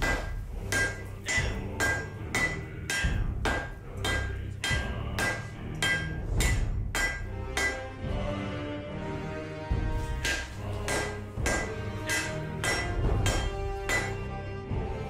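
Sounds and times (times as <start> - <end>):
hammer striking steel on anvil: 0.0 - 8.0, 10.0 - 14.3.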